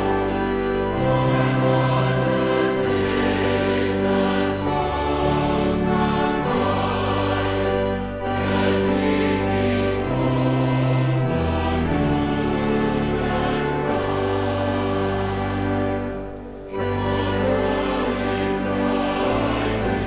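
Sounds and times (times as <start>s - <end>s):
choir singing a hymn: 0.0s - 20.0s
pipe organ chords: 0.0s - 20.0s.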